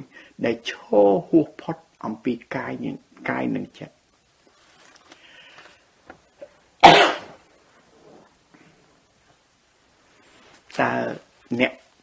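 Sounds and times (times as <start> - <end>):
person coughing: 6.8 - 7.4.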